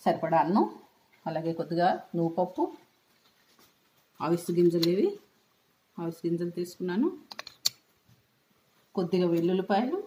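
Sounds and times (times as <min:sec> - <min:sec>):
woman speaking: 0:00.0 - 0:02.9, 0:04.2 - 0:05.3, 0:06.0 - 0:07.3, 0:08.9 - 0:10.0.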